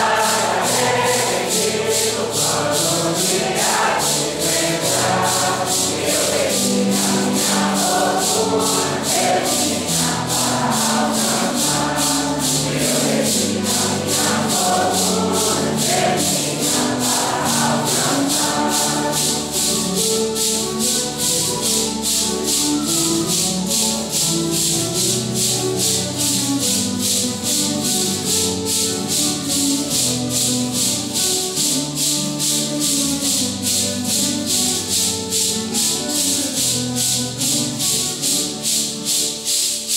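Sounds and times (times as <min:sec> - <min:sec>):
acoustic guitars playing a hymn: 0:00.0 - 0:39.9
maracas shaken in a steady beat: 0:00.0 - 0:39.9.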